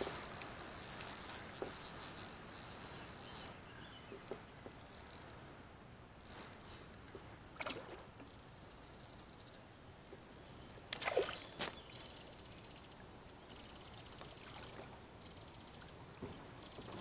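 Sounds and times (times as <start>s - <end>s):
fishing reel whirring: 0.0s - 5.4s, 6.2s - 7.4s, 9.0s - 12.9s, 13.5s - 14.4s, 15.2s - 15.7s
faint water sounds: 0.0s - 17.0s
small ticks: 4.1s - 5.3s, 10.0s - 11.0s, 11.6s - 14.4s.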